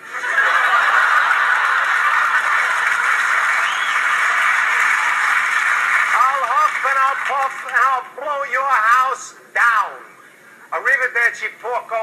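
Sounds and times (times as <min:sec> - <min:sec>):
audience laughing: 0:00.0 - 0:05.5
audience applauding: 0:00.2 - 0:08.0.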